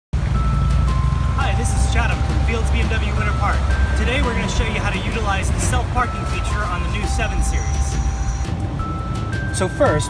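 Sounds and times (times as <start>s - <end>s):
steady low rumble: 0.2s - 9.1s
long single notes melody: 0.2s - 10.0s
man talking: 1.4s - 8.1s, 9.6s - 10.0s.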